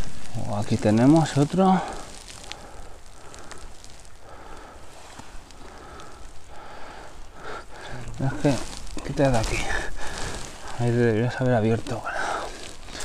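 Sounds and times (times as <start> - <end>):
dry grass crackling and rustling: 0.0 - 13.0
person speaking: 7.8 - 12.6.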